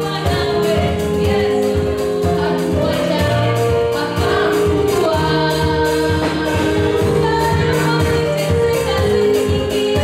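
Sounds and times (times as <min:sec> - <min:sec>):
live band with electric bass: 0:00.0 - 0:10.0.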